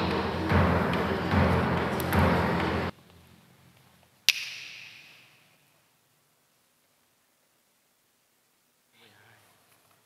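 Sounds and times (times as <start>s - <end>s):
chanting voices: 0.0s - 2.9s
low drum beat: 0.0s - 2.9s.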